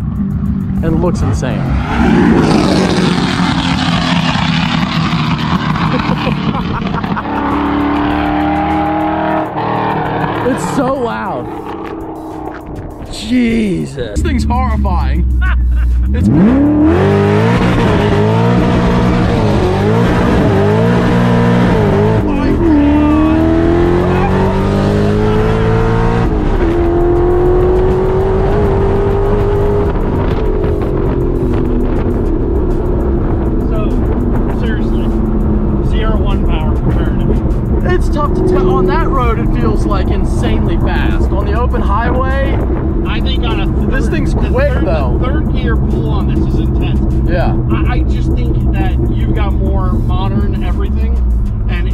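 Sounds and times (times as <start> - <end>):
car engine accelerating: 0.0 - 51.9.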